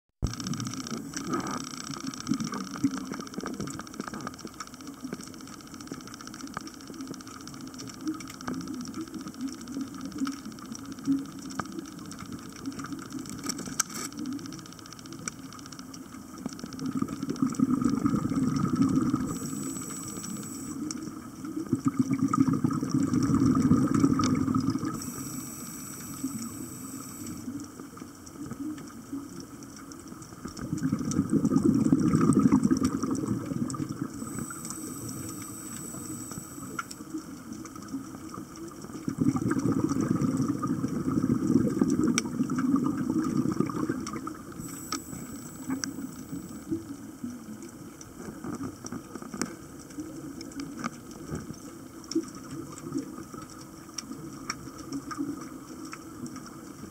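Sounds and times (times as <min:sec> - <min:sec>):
bubbling exhales underwater: 0:00.2 - 0:04.5, 0:16.8 - 0:27.6, 0:30.5 - 0:47.5
regulator hissing inhales: 0:25.0 - 0:27.5.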